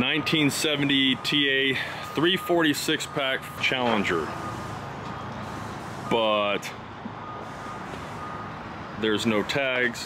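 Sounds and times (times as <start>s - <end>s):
outdoor background noise: 0.0s - 10.0s
vehicle reversing beeper: 0.0s - 10.0s.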